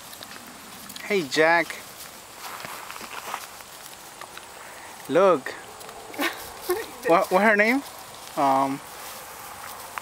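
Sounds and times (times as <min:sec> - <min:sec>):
donkey tearing and chewing grass: 0:00.0 - 0:10.0.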